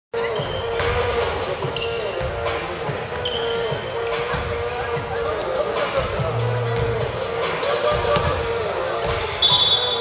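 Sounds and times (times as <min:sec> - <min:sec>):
voices echoing in hall: 0:00.2 - 0:10.0.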